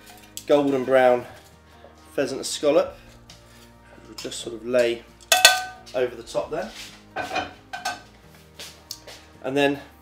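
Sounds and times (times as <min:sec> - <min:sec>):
metal pans clinking: 0:05.2 - 0:05.9, 0:07.2 - 0:08.1.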